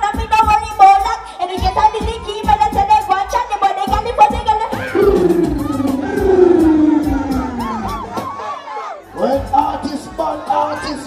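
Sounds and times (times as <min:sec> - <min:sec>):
crowd noise: 0:04.6 - 0:11.0
dancehall music: 0:04.8 - 0:08.7
long held note sliding down: 0:04.9 - 0:08.2.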